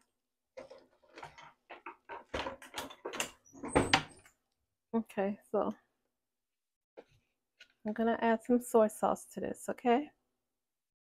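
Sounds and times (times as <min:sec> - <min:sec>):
kitchen knocks and clatters: 0:00.6 - 0:04.3.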